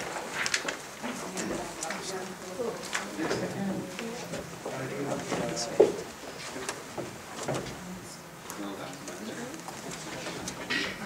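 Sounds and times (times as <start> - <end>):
indistinct voices talking quietly: 0.9 - 11.0.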